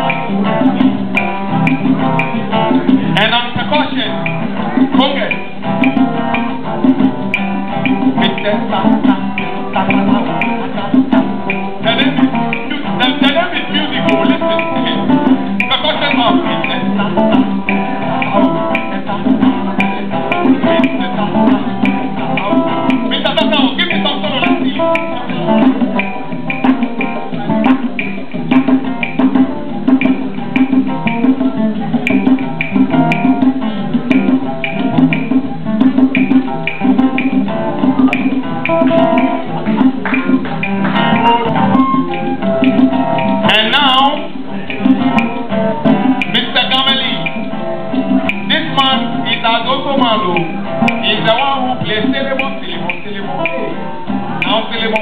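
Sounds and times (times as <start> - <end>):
hand drums: 0.0 - 55.0
plucked acoustic guitars: 0.0 - 55.0.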